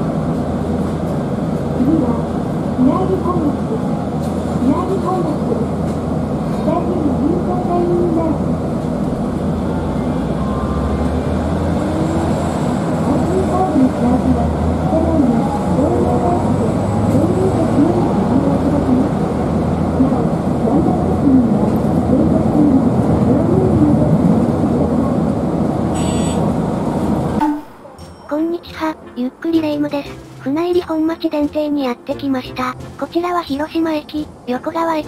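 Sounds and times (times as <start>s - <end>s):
tram rumbling: 0.0s - 35.0s
recorded announcement: 1.8s - 4.0s, 4.6s - 5.9s, 6.6s - 8.6s, 12.9s - 26.4s, 27.4s - 35.0s.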